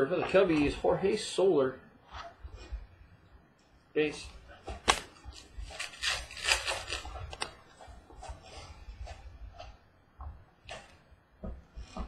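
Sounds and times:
trading cards flipped by hand: 4.8 - 7.6.

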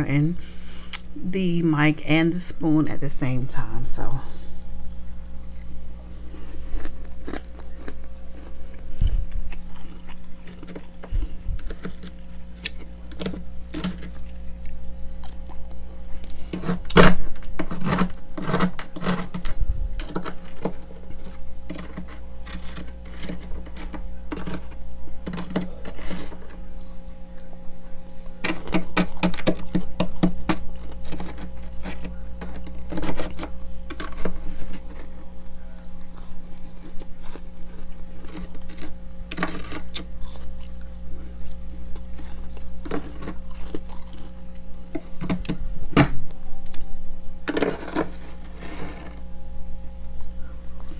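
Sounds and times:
frost crunching when chewed: 5.4 - 46.0
spoon scraping frost: 16.1 - 26.6, 36.5 - 40.6, 47.5 - 49.2.

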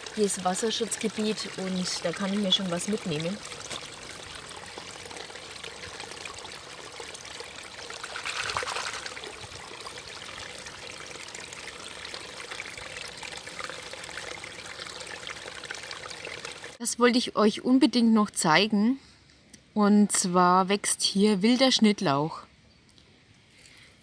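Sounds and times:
shallow brook running: 7.6 - 16.8.

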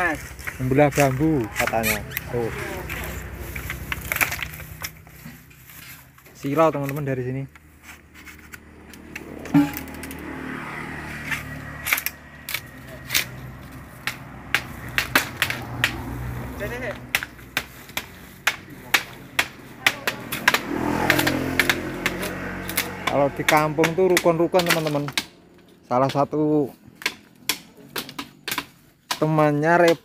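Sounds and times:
blade striking bamboo: 2.9 - 5.3, 7.8 - 10.2, 11.2 - 16.1, 16.7 - 25.4, 27.0 - 30.0.

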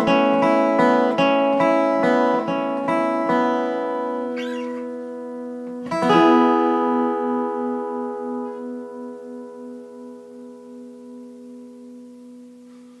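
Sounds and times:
acoustic guitar chord ringing: 0.0 - 13.0.

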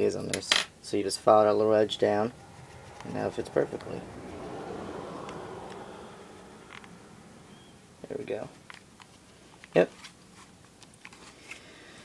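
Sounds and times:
soft rushing noise: 1.2 - 8.6.

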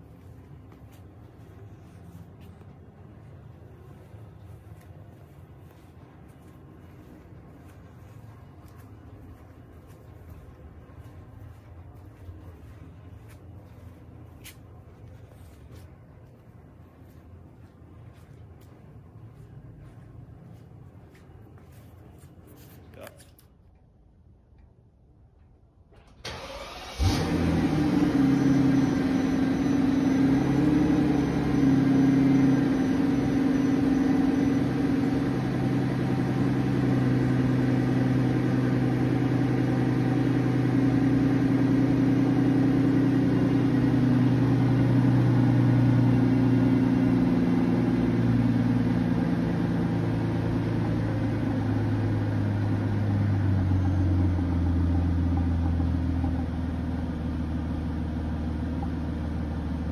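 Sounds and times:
car engine cranking: 26.0 - 29.1
car engine idling: 26.1 - 59.9.

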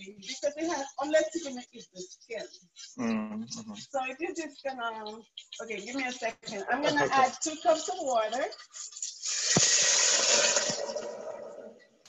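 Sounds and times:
water pouring into a saucepan: 7.4 - 11.6.

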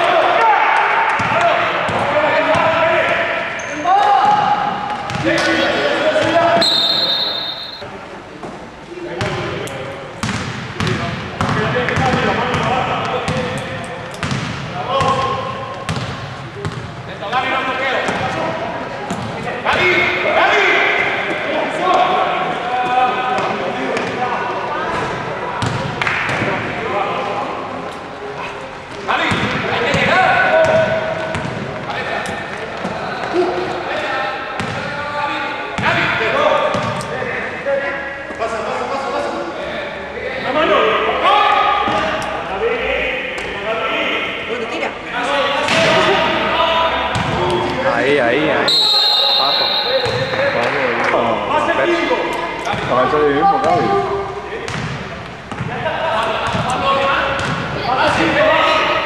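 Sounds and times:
players and coaches shouting: 0.0 - 7.8, 19.6 - 23.4, 48.0 - 54.5
basketball bouncing on court floor: 4.2 - 5.4, 10.2 - 13.5, 14.1 - 16.9, 29.3 - 31.9, 34.6 - 34.9, 36.7 - 37.0, 54.7 - 55.7, 56.4 - 56.8, 57.4 - 57.8
shrill whistle blast: 6.6 - 7.8, 48.7 - 50.3.

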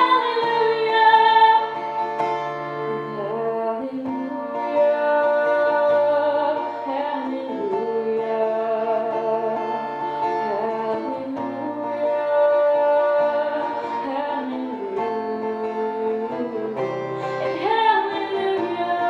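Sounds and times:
acoustic guitar: 0.0 - 19.0
woman singing: 0.0 - 19.0.

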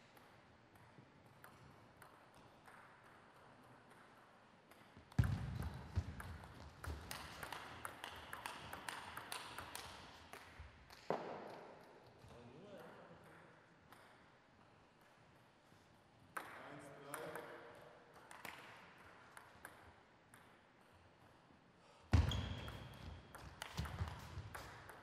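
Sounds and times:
table tennis ball clicks: 6.2 - 11.0.

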